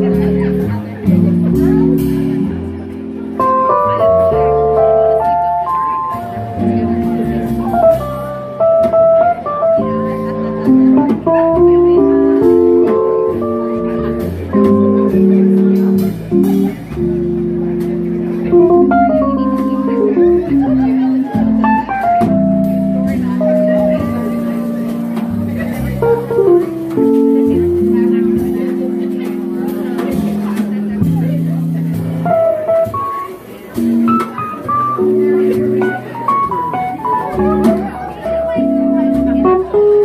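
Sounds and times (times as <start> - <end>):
drum kit with cymbals: 0.0 - 40.0
keyboard chords and melody: 0.0 - 40.0
piano run: 0.0 - 40.0
plucked double bass: 0.0 - 40.0.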